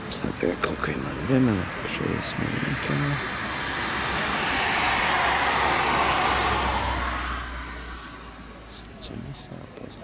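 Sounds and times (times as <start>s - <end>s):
vehicle passing with low rumble: 0.3s - 9.0s.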